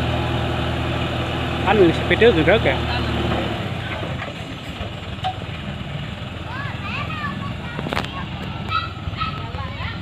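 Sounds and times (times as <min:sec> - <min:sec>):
truck diesel engine under load: 0:00.0 - 0:10.0.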